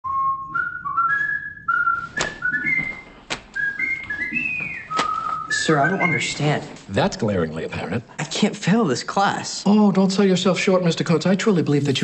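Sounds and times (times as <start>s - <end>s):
person whistling a tune: 0.0s - 6.4s.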